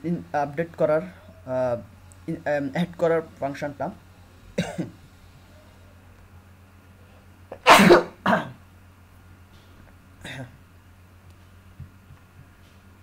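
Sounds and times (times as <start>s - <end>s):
person coughing: 4.6s - 5.0s, 7.5s - 8.6s, 10.2s - 10.6s.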